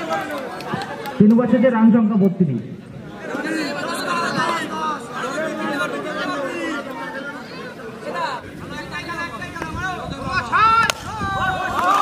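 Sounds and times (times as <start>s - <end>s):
several voices chattering: 0.0s - 11.8s.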